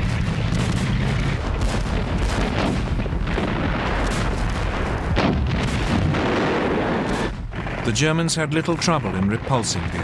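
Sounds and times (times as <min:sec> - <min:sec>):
gunfire: 0:00.0 - 0:10.0
low rumble: 0:00.0 - 0:10.0
shells exploding: 0:00.0 - 0:10.0.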